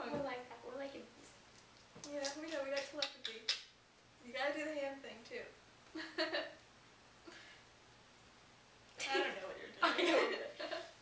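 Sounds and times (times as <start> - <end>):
young woman talking: 9.0 - 9.8.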